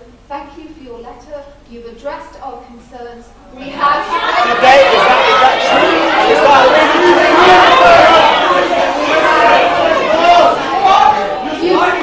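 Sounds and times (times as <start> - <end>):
students talking at once: 3.2 - 12.0.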